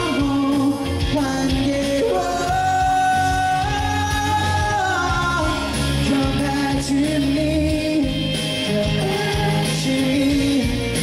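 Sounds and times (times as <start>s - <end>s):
man singing into a microphone: 0.0s - 11.0s
musical accompaniment: 0.0s - 11.0s.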